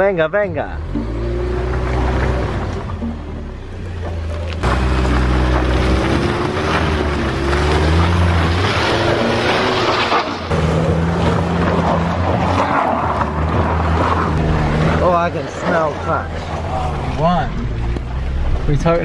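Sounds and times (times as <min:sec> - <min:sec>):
car engine revving under load: 0:00.6 - 0:19.0.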